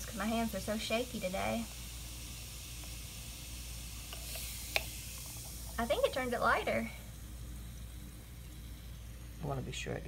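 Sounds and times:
faint hiss: 0:00.0 - 0:10.0
low background hum: 0:00.0 - 0:10.0.

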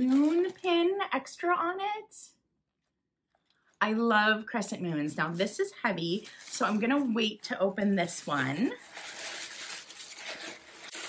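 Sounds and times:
tissue paper rustling and crinkling: 0:00.0 - 0:00.6, 0:05.4 - 0:11.0.

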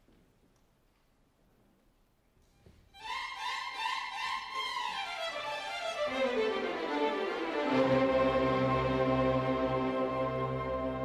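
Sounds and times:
orchestral violins playing: 0:02.9 - 0:11.0.

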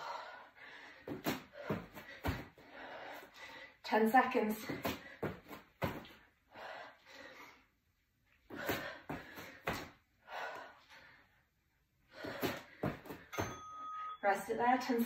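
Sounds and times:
heavy breathing: 0:00.0 - 0:03.9, 0:06.4 - 0:07.8, 0:08.4 - 0:13.3
short steady beep: 0:13.4 - 0:14.2.

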